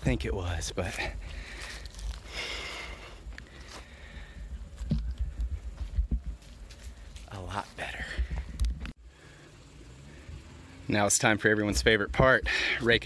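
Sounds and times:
wind rumbling on microphone: 0:04.1 - 0:07.2, 0:08.0 - 0:09.0.

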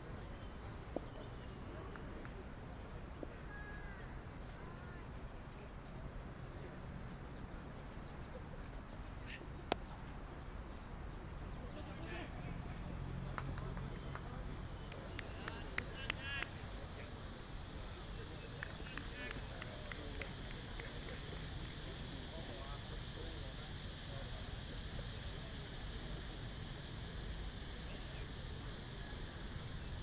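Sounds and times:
outdoor background noise: 0:00.0 - 0:30.0.

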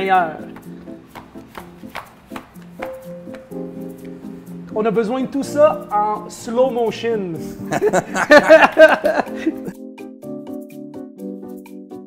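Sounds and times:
keyboard background music: 0:00.0 - 0:12.0.

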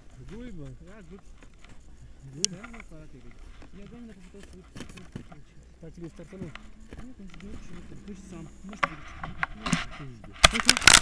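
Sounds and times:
handling clicks and scrapes: 0:00.0 - 0:11.0
low voices: 0:00.0 - 0:11.0.

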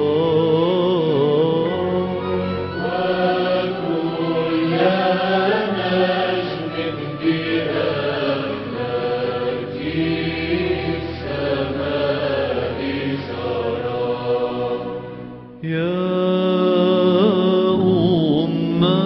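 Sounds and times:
person singing chant: 0:00.0 - 0:14.9, 0:15.6 - 0:19.0.

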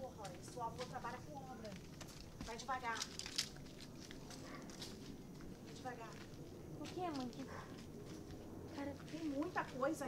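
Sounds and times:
footsteps through debris: 0:00.2 - 0:09.8.

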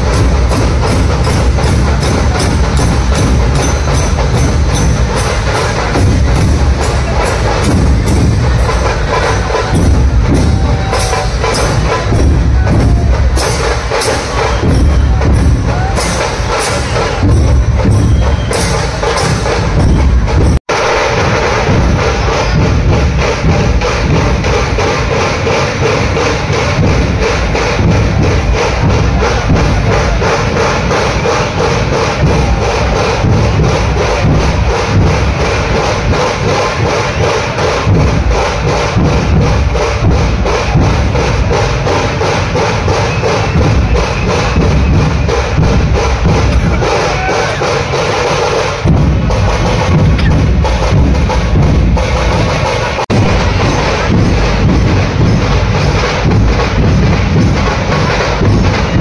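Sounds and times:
crowd voices: 0:00.0 - 0:59.0
loud drum troupe drumming: 0:00.0 - 0:59.0.

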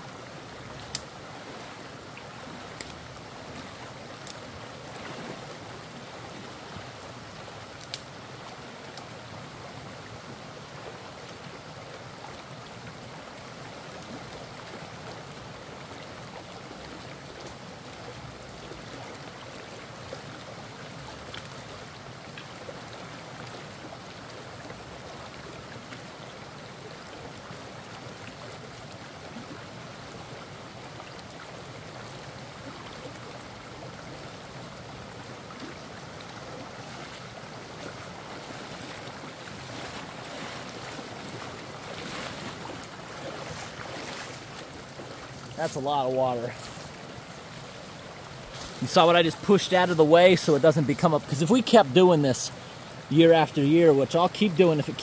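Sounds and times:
water rushing down a stream: 0:00.0 - 0:55.0.

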